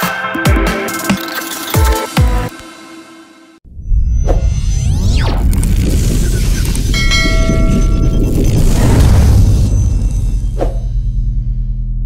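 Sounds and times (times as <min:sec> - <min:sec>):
deep bass rumble: 0:03.7 - 0:12.0
bell-like chime: 0:07.0 - 0:08.7.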